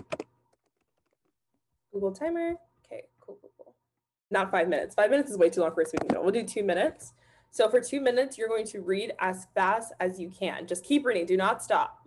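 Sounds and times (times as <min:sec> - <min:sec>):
laptop keyboard typing: 0:00.0 - 0:01.2.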